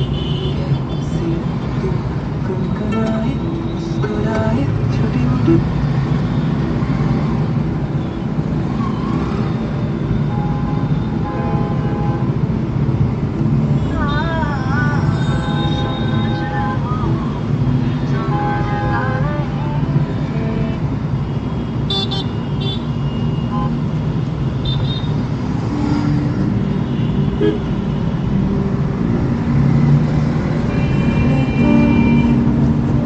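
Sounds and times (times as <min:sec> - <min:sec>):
vehicle horns honking: 0:00.0 - 0:01.2, 0:10.2 - 0:12.3, 0:13.8 - 0:16.8, 0:20.1 - 0:23.8, 0:24.6 - 0:25.2, 0:26.7 - 0:28.1, 0:30.6 - 0:32.8
road and engine rumble: 0:00.0 - 0:33.0.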